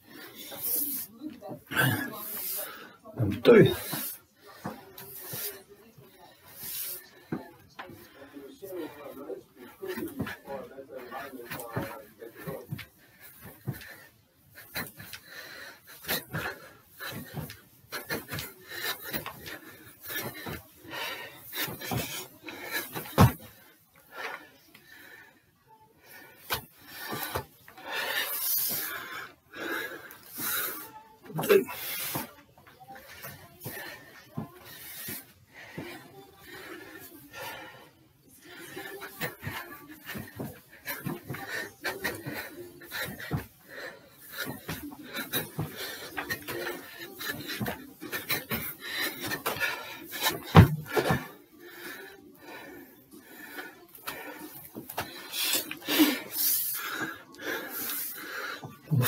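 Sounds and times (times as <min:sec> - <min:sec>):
man breathing hard: 0:11.2 - 0:59.0
feet thudding on stairs: 0:16.0 - 0:23.6, 0:39.2 - 0:43.6, 0:44.3 - 0:51.4.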